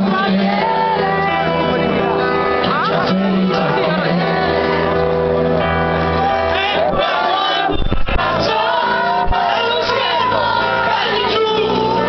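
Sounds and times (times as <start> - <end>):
man singing: 0.0 - 5.0, 6.5 - 12.0.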